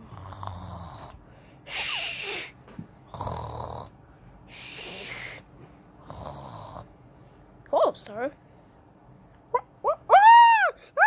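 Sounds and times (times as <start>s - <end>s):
person snoring: 0.0s - 1.2s, 3.1s - 5.4s, 6.0s - 6.9s.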